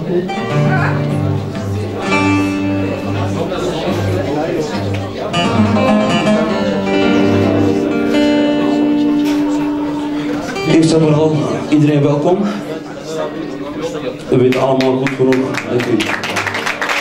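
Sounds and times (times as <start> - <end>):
acoustic guitar playing: 0.0 - 16.5.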